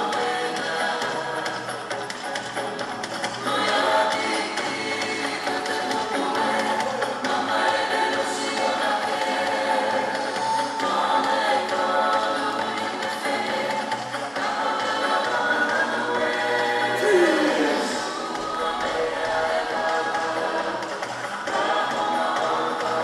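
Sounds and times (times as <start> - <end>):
choir singing: 3.5 - 23.0.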